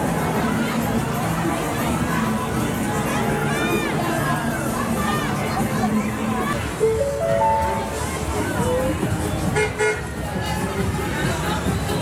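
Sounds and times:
background music: 0.0s - 12.0s
crowd chatter with children: 0.0s - 12.0s
electronic beep notes: 6.8s - 8.1s.

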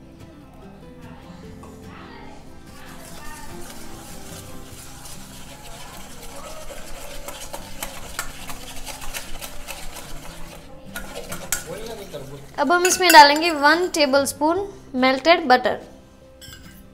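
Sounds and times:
whisk beating batter in metal bowl: 2.7s - 14.1s.

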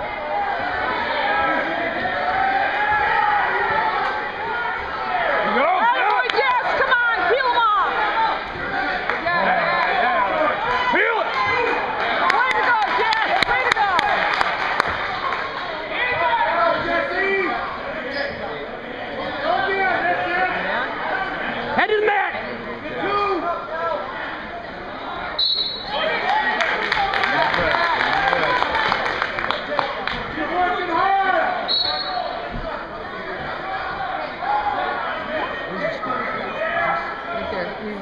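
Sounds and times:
spectators shouting and cheering: 0.0s - 38.0s.

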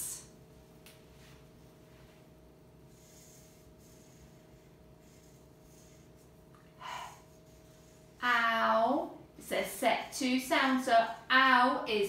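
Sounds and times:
low electrical hum: 0.0s - 12.0s
marker scratching on paper: 2.9s - 6.4s
short breath: 6.8s - 7.4s.

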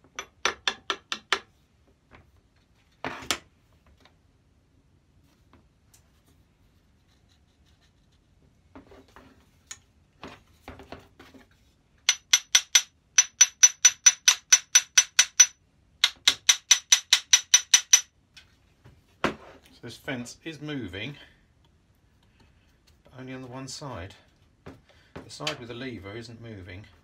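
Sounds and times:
metal plane parts clicking: 12.1s - 18.1s.

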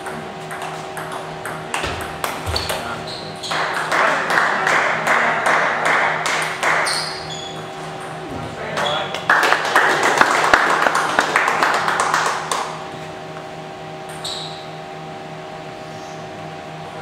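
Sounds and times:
table tennis ball bouncing: 0.0s - 8.3s, 14.0s - 14.6s
steady hall hum: 0.0s - 17.0s
spectators clapping: 3.6s - 6.9s, 8.8s - 12.9s.

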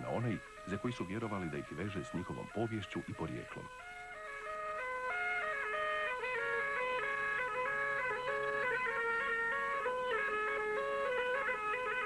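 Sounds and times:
bagpipe-like folk dance tune: 0.0s - 12.0s.

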